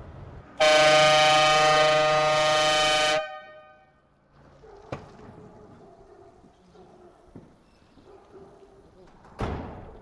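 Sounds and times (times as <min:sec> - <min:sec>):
van horn blast: 0:00.6 - 0:03.9.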